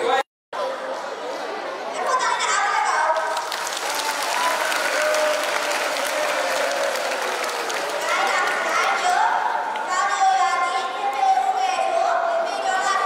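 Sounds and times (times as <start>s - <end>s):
audience clapping: 3.1s - 9.9s.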